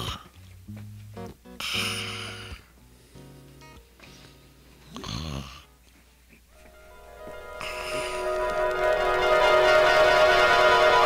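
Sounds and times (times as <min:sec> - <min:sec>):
soft background music: 0:06.5 - 0:11.0.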